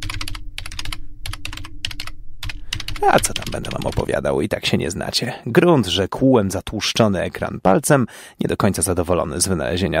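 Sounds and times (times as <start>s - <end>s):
typing on computer keyboard: 0.0s - 4.1s
faint low hum: 0.0s - 6.0s.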